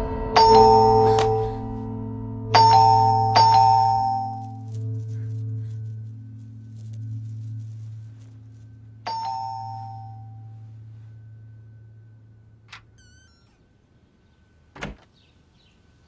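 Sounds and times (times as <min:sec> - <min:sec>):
electronic doorbell chime: 0:00.0 - 0:01.6, 0:02.5 - 0:04.6, 0:09.0 - 0:12.0
low music drone: 0:00.0 - 0:13.0
short chirping: 0:12.7 - 0:14.5.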